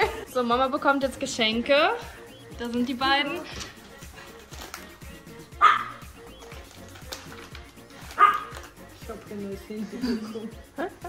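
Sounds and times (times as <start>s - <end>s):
background music with a beat: 0.0s - 11.0s
dog barking: 5.6s - 6.1s, 8.0s - 8.6s.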